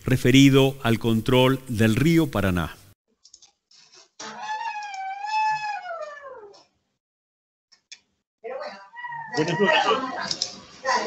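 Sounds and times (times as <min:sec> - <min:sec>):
long high animal call: 0:04.2 - 0:06.6.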